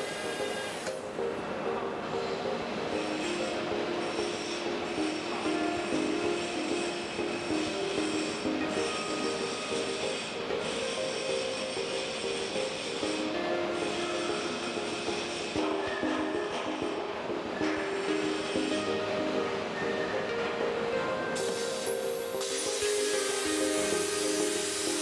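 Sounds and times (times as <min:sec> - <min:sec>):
plasma cutter whine and hiss: 0:00.0 - 0:01.2, 0:03.0 - 0:15.8, 0:21.4 - 0:25.0
background music: 0:00.0 - 0:25.0.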